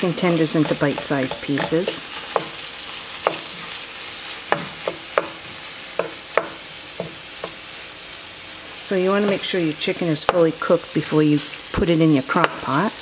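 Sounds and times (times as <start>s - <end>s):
food sizzling in frying pan: 0.0s - 13.0s
spatula knocking on pan: 0.6s - 2.6s, 3.2s - 3.6s, 4.5s - 7.6s.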